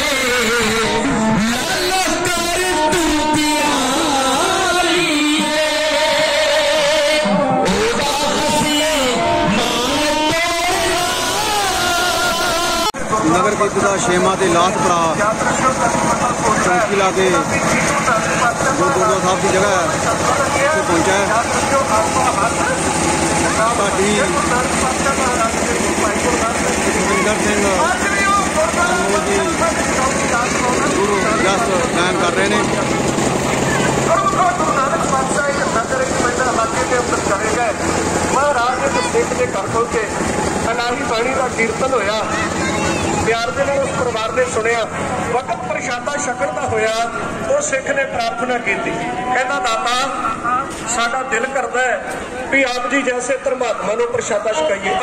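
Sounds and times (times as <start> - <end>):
diesel generator running: 0.0 - 55.0
people talking: 0.0 - 55.0.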